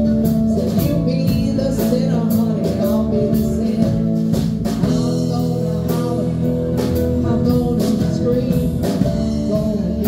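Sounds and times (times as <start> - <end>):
small live band playing: 0.0 - 10.0
steady drum beat: 0.0 - 10.0.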